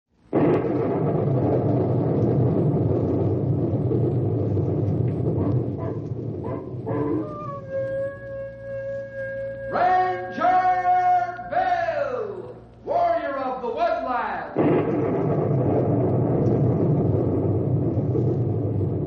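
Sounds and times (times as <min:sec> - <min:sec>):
loud rushing roar: 0:00.3 - 0:07.3, 0:14.6 - 0:19.0
long steady howl: 0:05.2 - 0:11.5.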